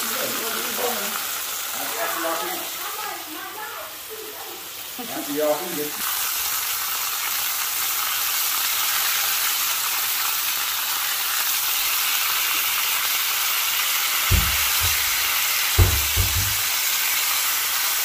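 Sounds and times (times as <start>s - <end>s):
meat sizzling in a frying pan: 0.0s - 18.0s
dull low thumps: 14.3s - 15.2s.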